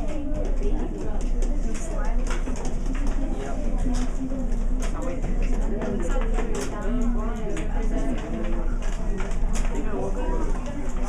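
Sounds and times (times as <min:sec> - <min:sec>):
students chattering: 0:00.0 - 0:11.0.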